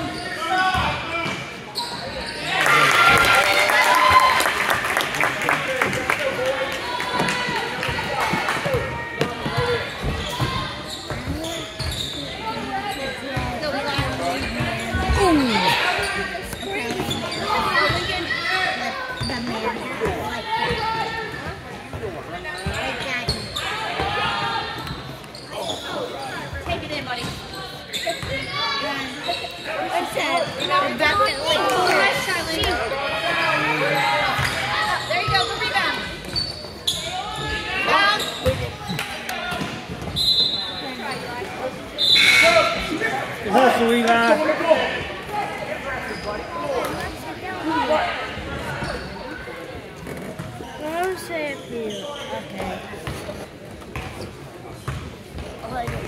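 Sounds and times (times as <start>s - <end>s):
voices in hall: 0.0s - 56.0s
basketball bouncing on court: 54.8s - 56.0s.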